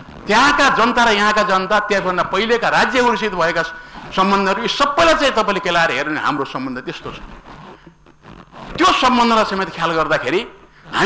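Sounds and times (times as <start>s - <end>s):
man speaking: 0.3s - 7.3s, 8.8s - 11.0s.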